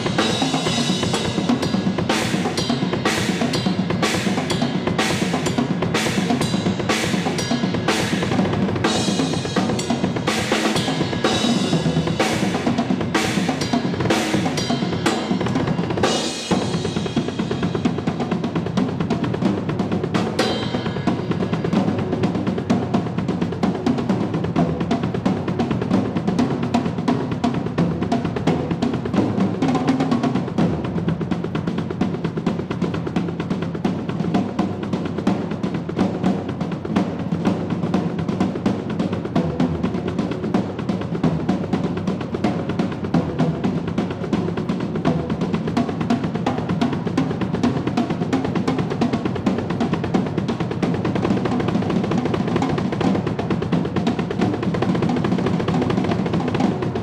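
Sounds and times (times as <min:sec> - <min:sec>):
drum solo: 0:00.0 - 0:57.0.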